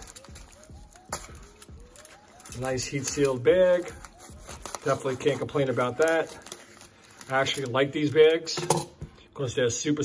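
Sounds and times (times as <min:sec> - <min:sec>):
plastic crinkling: 0:00.0 - 0:08.7.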